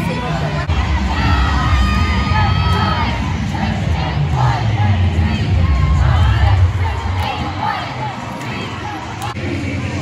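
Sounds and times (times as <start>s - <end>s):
bass-heavy background music: 0.0s - 8.4s
cheerleaders shouting and cheering: 0.0s - 10.0s.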